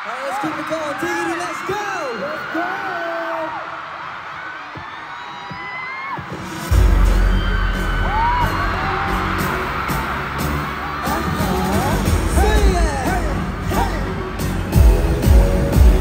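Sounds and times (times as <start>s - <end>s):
crowd of fans screaming: 0.0s - 15.3s
pop track with heavy bass: 6.4s - 16.0s.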